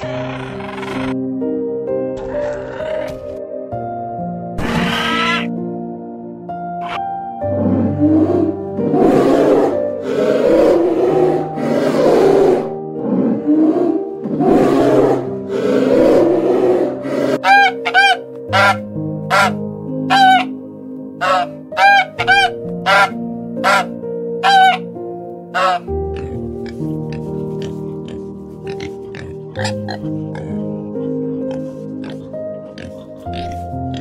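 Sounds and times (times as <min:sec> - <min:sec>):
polar bear roaring: 0:00.0 - 0:01.2, 0:02.2 - 0:03.2, 0:07.6 - 0:17.9
soft background music: 0:00.0 - 0:34.0
swan honking: 0:17.4 - 0:20.6, 0:21.2 - 0:24.9, 0:25.5 - 0:26.3.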